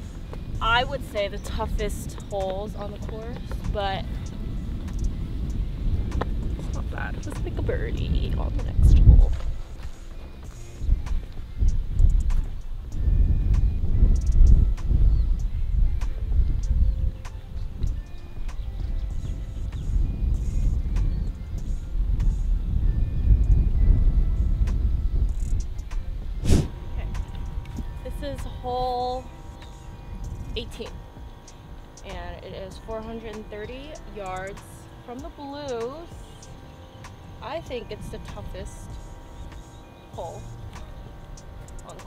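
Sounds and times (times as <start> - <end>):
faint background music: 0.0 - 42.0
wind buffeting microphone: 0.0 - 42.0.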